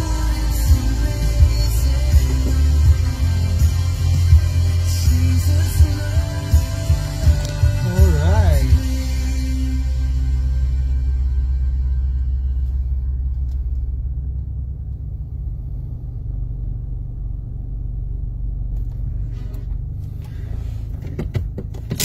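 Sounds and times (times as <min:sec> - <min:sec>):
car cabin low rumble: 0:00.0 - 0:22.0.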